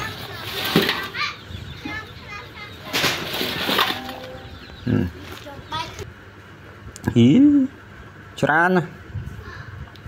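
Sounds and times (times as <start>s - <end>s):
children and people talking: 0.0s - 6.6s, 9.1s - 10.0s.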